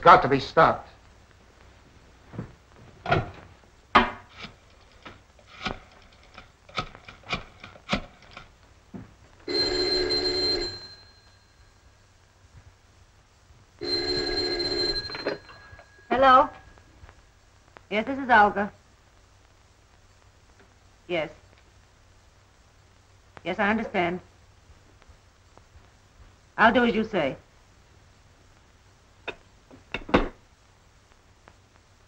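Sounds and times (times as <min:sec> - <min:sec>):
electric telephone bell ringing: 0:09.4 - 0:11.7, 0:13.8 - 0:16.7.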